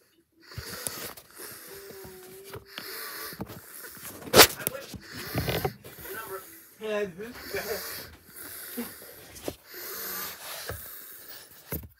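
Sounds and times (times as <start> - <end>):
person wheezy exhale: 0.4 - 11.8.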